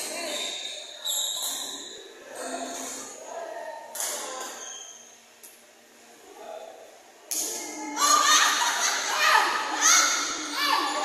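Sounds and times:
shoes squeaking on court floor: 0:00.0 - 0:03.0, 0:04.3 - 0:05.2
voices in a hall: 0:00.0 - 0:11.0.

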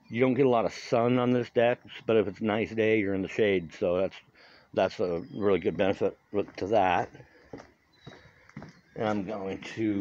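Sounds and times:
soft footsteps on wooden boards: 0:05.0 - 0:10.0.

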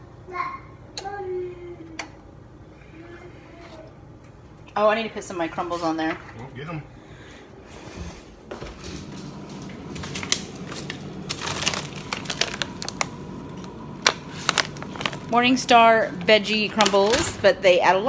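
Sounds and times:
plastic bags rustling: 0:08.7 - 0:17.9
sharp crackles: 0:10.0 - 0:15.4.

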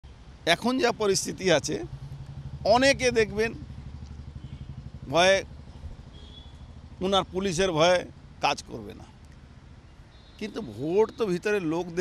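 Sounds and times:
low engine hum: 0:00.2 - 0:10.0
man speaking: 0:00.5 - 0:01.9, 0:02.7 - 0:03.6, 0:05.1 - 0:05.4, 0:07.0 - 0:09.1, 0:10.4 - 0:12.0.

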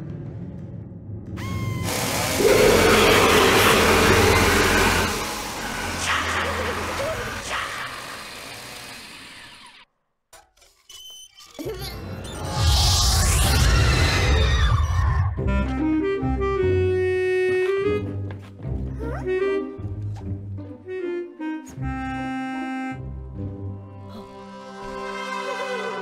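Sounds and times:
music: 0:00.0 - 0:05.4, 0:14.2 - 0:26.0
loud noise: 0:01.4 - 0:09.4, 0:12.4 - 0:15.3
harsh mechanical noise: 0:01.4 - 0:09.9.

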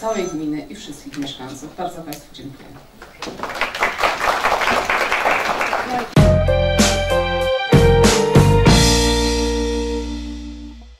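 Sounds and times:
roomful of people applauding: 0:03.0 - 0:06.2.

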